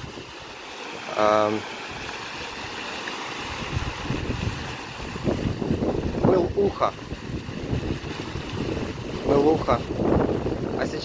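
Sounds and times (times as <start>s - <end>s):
wind buffeting microphone: 0.0s - 0.6s, 1.8s - 11.0s
fountain water splashing: 0.0s - 11.0s.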